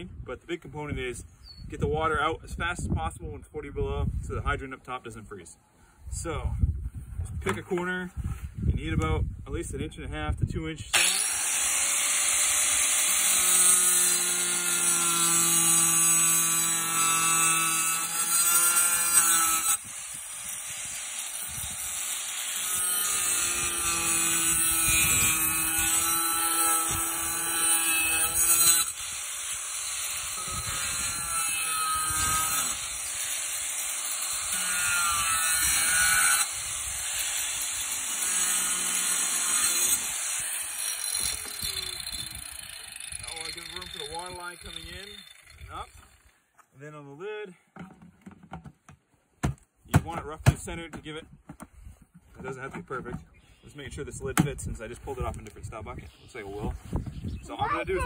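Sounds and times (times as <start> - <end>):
angle grinder cutting plastic: 10.9 - 46.0.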